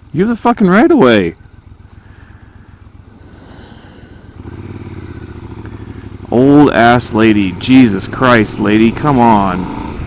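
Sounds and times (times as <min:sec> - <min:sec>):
motorcycle engine idling and accelerating: 0:00.0 - 0:10.0.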